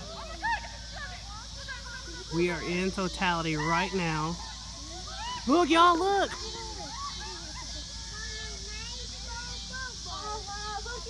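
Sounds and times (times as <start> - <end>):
people talking over one another: 0.0 - 11.0
steady high hiss: 0.0 - 11.0.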